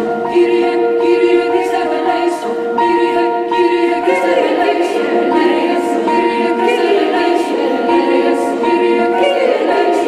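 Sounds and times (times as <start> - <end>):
mixed choir singing a cappella: 0.0 - 10.0.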